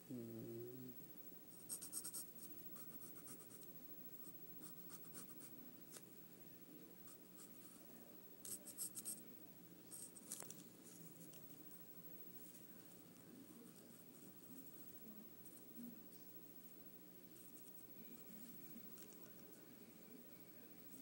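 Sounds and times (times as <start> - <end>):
pencil scratching on paper: 1.6 - 5.5, 8.4 - 9.2.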